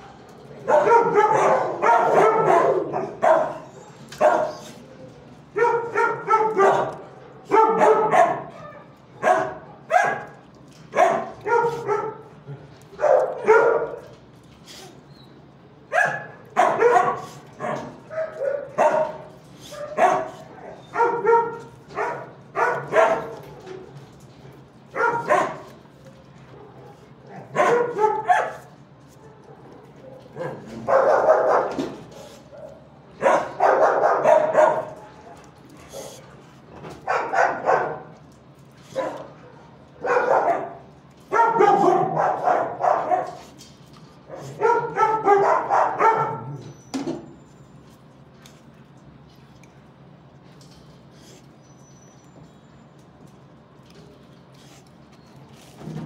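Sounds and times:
dogs barking: 0.0s - 4.8s, 5.5s - 14.2s, 15.8s - 23.9s, 24.8s - 25.9s, 26.5s - 43.6s, 44.2s - 46.8s.

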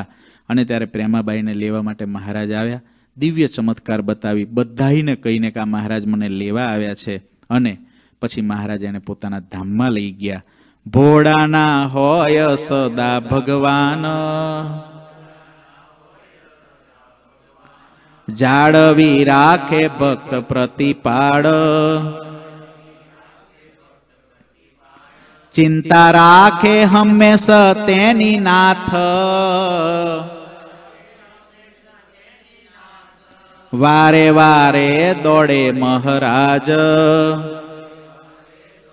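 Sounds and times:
man chanting a devotional hymn: 0.0s - 38.9s.

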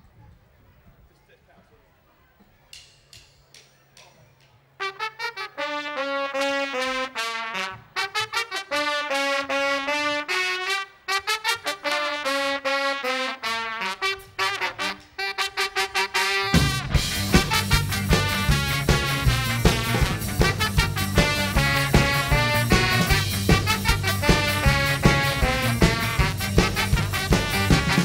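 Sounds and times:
horn section playing riff: 4.8s - 28.0s.

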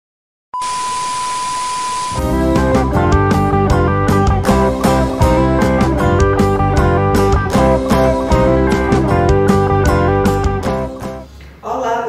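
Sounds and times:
steady beep tone: 0.6s - 2.3s.

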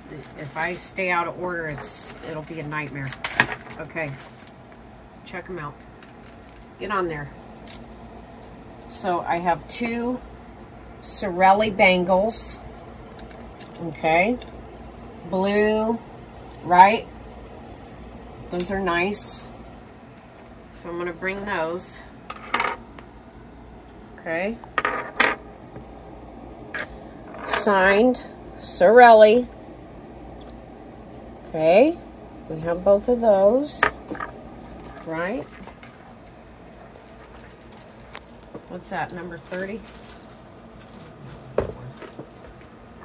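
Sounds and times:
plastic bags clicking in bin: 1.7s - 4.6s, 34.9s - 43.0s.

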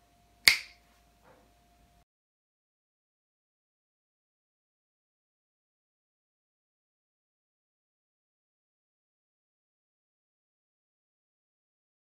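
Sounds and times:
finger snap: 0.5s - 0.8s.

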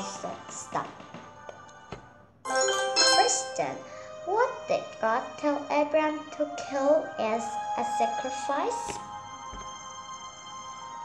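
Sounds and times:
soft background music: 0.0s - 11.0s
girl speaking in sing-song voice: 3.1s - 9.0s.

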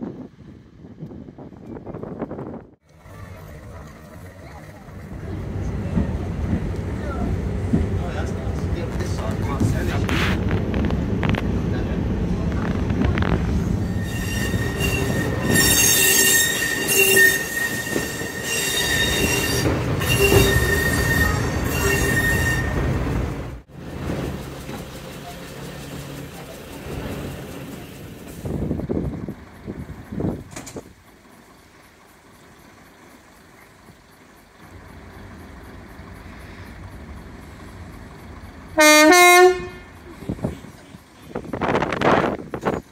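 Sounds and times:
train engine and wheels rumbling: 0.0s - 42.9s
high wheel squeal: 13.8s - 23.2s.

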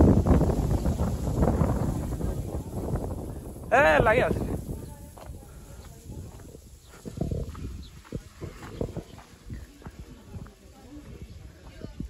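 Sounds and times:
footsteps on a path: 0.3s - 12.0s.

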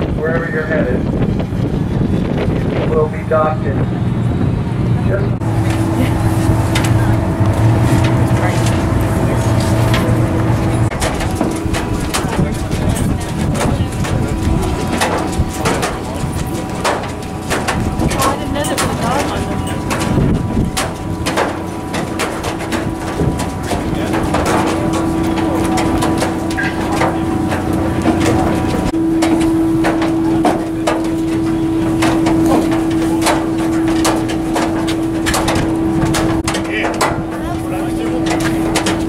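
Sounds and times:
boat engine idling hum: 0.0s - 39.0s
crowd chatter: 0.0s - 39.0s
footsteps on metal gangway: 0.0s - 39.0s.

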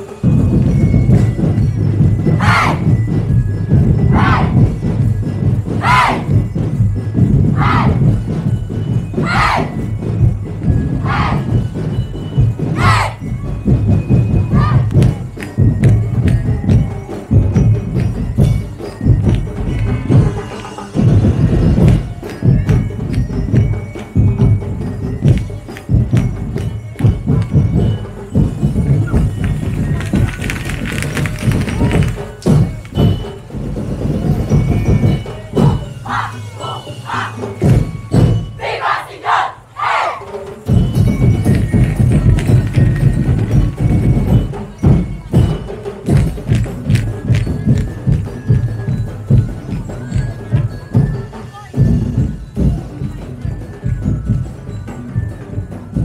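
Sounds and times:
sharp clicking percussion: 0.0s - 39.0s, 40.0s - 56.0s
street-dance music with heavy drums: 0.0s - 56.0s.

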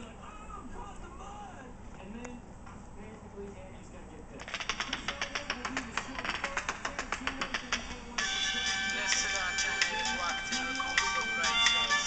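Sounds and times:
reggae music from phone speaker: 4.4s - 12.0s.

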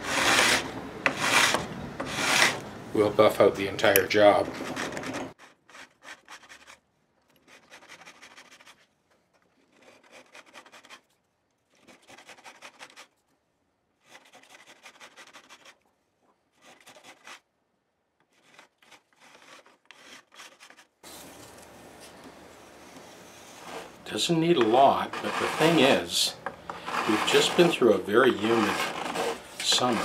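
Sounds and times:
file rasping on metal frets: 24.6s - 26.1s, 26.7s - 30.0s.

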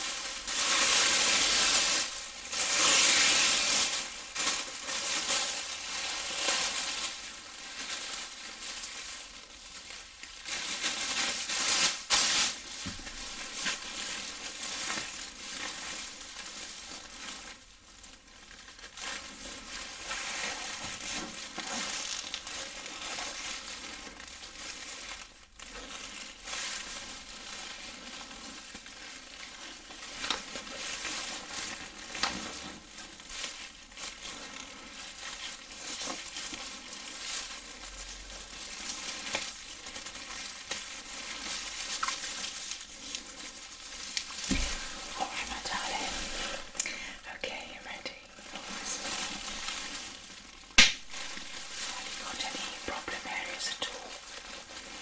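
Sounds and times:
plastic apron crinkling: 0.0s - 55.0s.

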